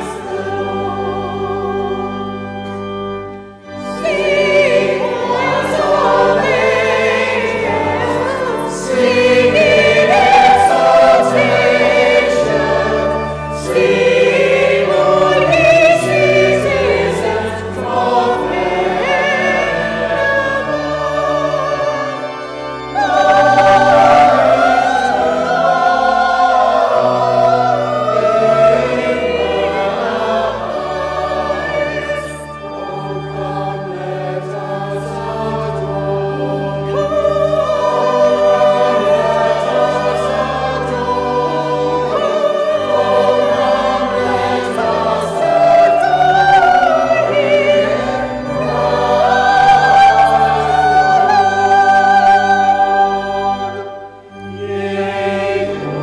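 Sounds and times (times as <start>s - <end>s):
choir singing a carol: 0.0s - 56.0s.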